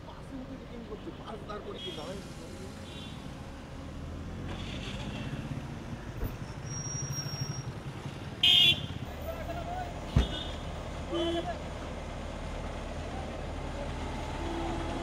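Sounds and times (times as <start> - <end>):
traffic rumble: 0.0 - 15.0
voices: 8.2 - 15.0.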